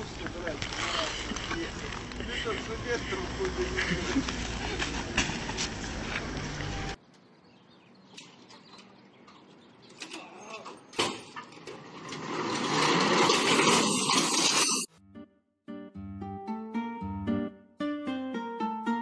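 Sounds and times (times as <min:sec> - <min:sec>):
plucked guitar music: 0:14.9 - 0:19.0.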